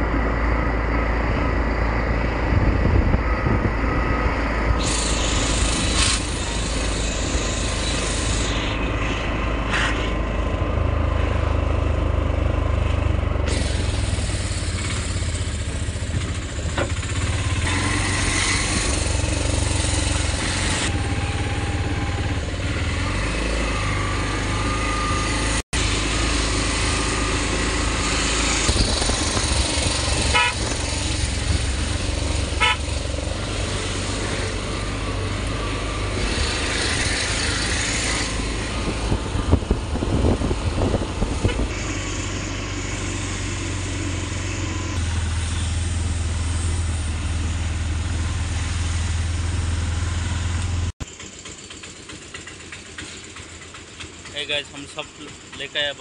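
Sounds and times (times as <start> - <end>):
vehicle engine and road rumble: 0.0 - 56.0
horn toots: 30.0 - 31.0, 32.4 - 33.2, 41.4 - 41.9.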